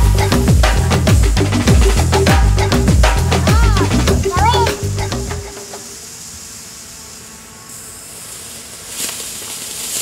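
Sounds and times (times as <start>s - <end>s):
background music: 0.0s - 5.9s
faint hiss: 4.6s - 10.0s
rocket motor ignition hiss: 4.9s - 10.0s.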